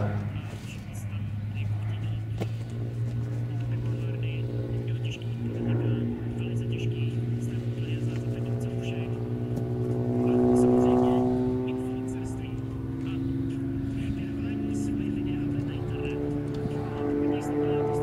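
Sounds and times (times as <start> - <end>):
propeller airplane engine droning: 0.0 - 18.0.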